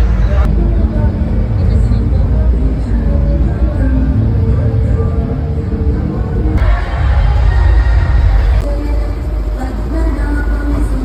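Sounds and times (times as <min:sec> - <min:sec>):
bass-heavy amplified music: 0:00.0 - 0:11.0
crowd voices: 0:00.0 - 0:11.0.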